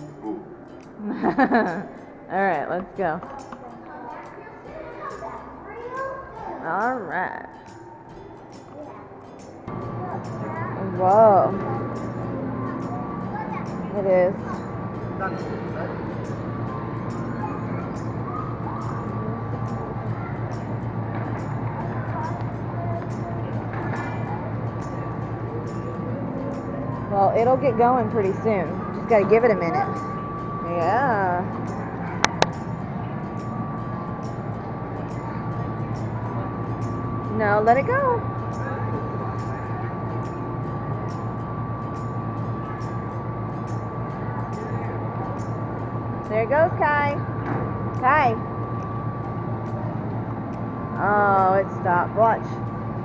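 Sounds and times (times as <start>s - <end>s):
constant high tone: 0.0s - 53.0s
distant voices: 0.0s - 53.0s
faint music: 0.0s - 53.0s
steady low hum: 0.0s - 53.0s.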